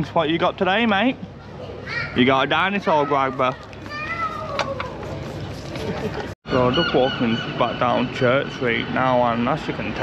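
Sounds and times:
child's high-pitched squeal: 3.9s - 5.0s.

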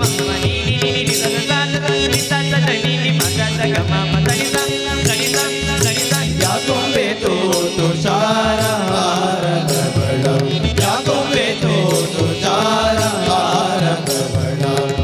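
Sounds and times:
hand cymbals struck in rhythm: 0.0s - 15.0s
men singing devotional song: 0.0s - 15.0s
tabla: 0.0s - 15.0s.

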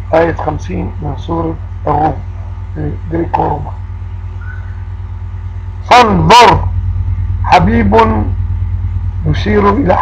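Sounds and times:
low hum with faint pulse: 0.0s - 10.0s
man speaking: 0.1s - 3.8s, 5.8s - 6.8s, 7.4s - 8.4s, 9.2s - 10.0s.

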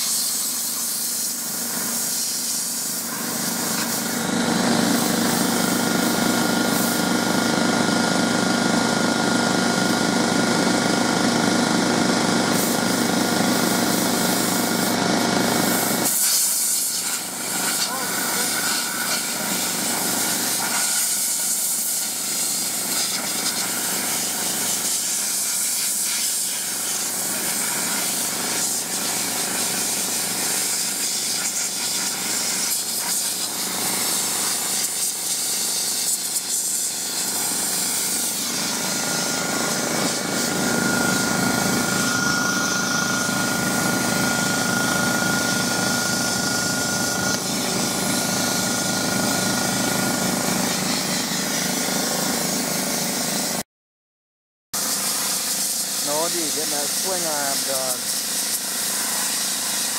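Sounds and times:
sandblaster hissing: 0.0s - 7.1s, 12.5s - 53.6s, 54.8s - 59.9s.

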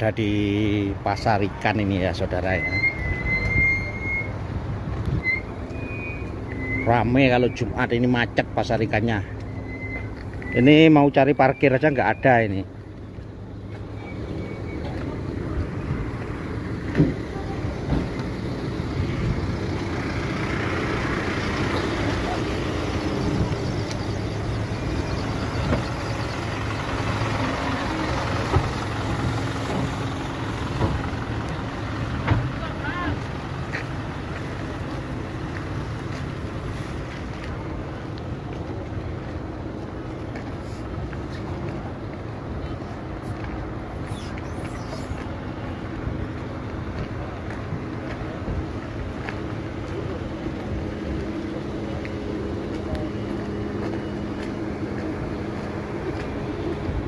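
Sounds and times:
car and van engines running: 0.0s - 57.0s
background voices: 10.2s - 57.0s.

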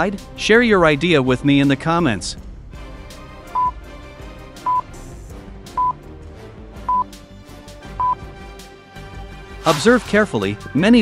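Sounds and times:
background music: 0.0s - 11.0s
high-pitched timer beeps: 3.6s - 3.8s.

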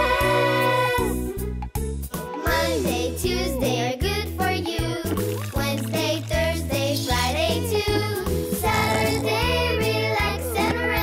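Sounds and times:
voices singing children's song: 0.0s - 1.3s, 2.4s - 11.0s
bright backing track with bass: 0.0s - 11.0s.

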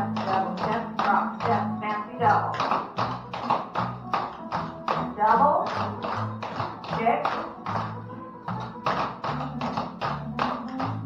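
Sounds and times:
country song: 0.0s - 11.0s.

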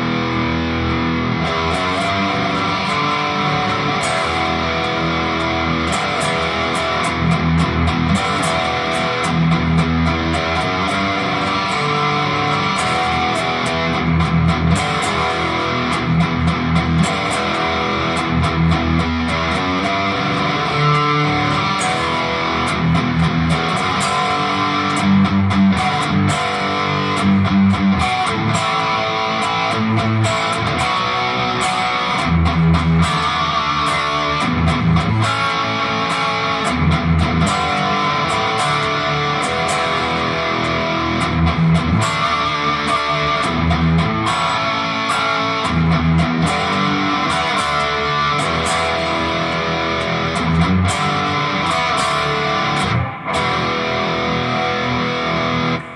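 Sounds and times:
distorted electric guitar: 0.0s - 55.9s.

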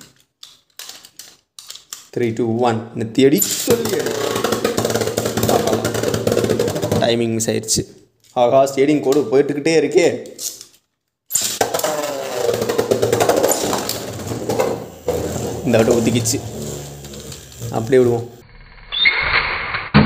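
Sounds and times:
excited voices: 11.7s - 12.7s.

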